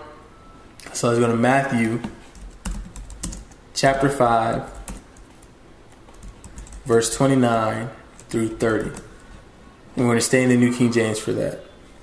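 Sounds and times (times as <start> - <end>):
man speaking: 0.8 - 2.2, 3.8 - 4.9, 6.8 - 9.1, 10.0 - 11.7
faint keyboard typing: 1.8 - 7.2, 8.2 - 9.4.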